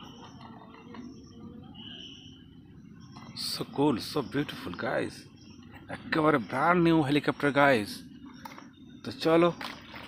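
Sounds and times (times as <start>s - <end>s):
faint insect trill: 0.0s - 4.5s.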